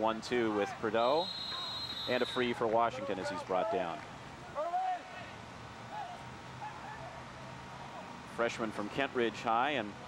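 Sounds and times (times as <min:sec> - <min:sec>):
distant shouted voices: 0:00.5 - 0:02.6.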